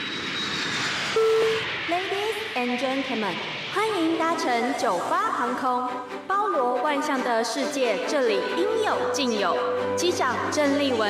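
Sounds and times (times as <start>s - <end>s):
jet engine rushing with whine: 0.0s - 6.3s.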